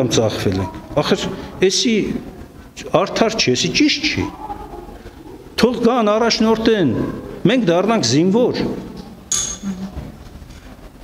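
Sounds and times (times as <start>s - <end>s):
low hum of man's voice: 0.0s - 4.4s.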